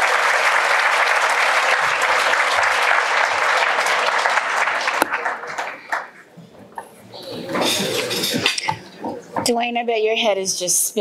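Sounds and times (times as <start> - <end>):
audience applause: 0.0 - 6.3
woman speaking into microphone: 9.4 - 11.0.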